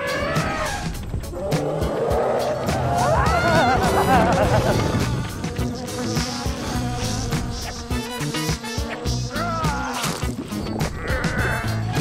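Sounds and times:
theme music with driving beat: 0.1 - 12.0.

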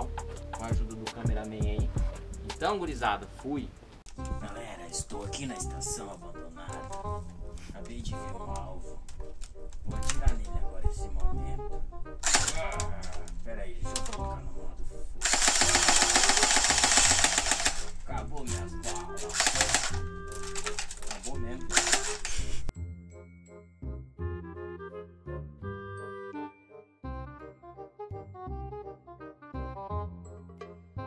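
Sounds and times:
music with steady beat: 0.0 - 3.4
airsoft rifle firing rapid clicks: 12.2 - 12.7, 15.2 - 18.0, 18.8 - 22.4.

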